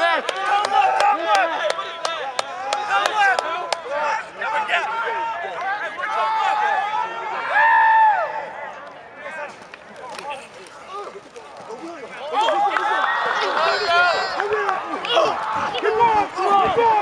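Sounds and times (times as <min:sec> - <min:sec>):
long drawn-out shout: 0:00.0 - 0:08.6, 0:12.3 - 0:17.0
crowd talking and calling out: 0:00.0 - 0:17.0.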